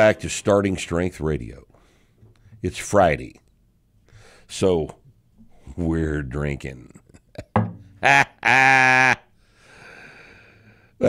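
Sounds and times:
man laughing: 6.9 - 9.2
man holding a drawn-out syllable: 8.0 - 9.2.

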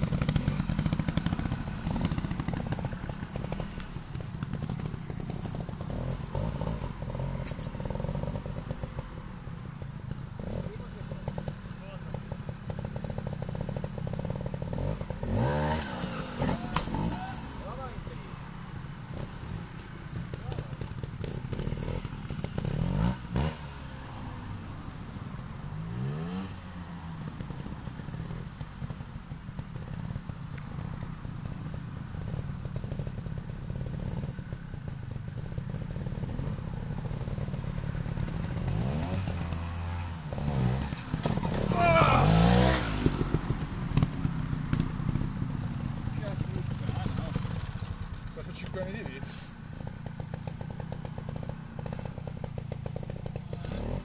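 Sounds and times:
motorcycle engines idling and revving: 0.0 - 54.0.

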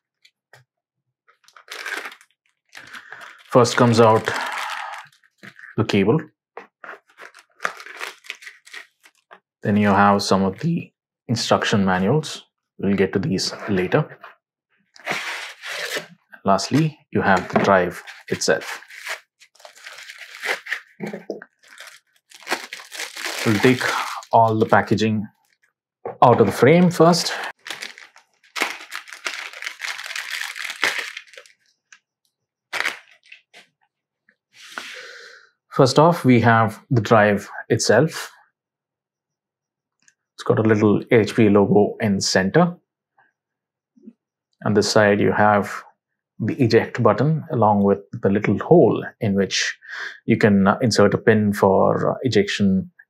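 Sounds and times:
plastic packaging crinkling: 1.3 - 5.8, 6.8 - 9.4, 15.0 - 16.1, 16.8 - 25.6, 26.5 - 32.0, 32.7 - 33.7.

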